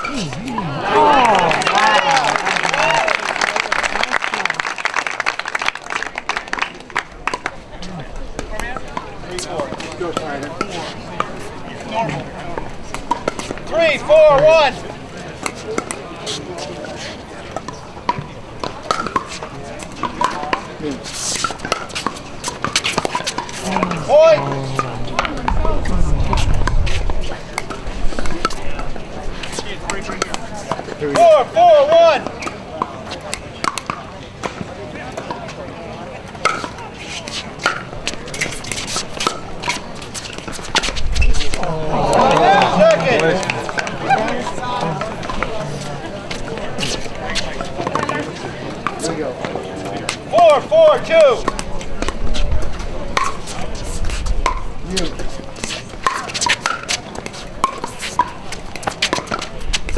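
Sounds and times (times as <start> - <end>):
spectator chatter: 0.0 - 59.9.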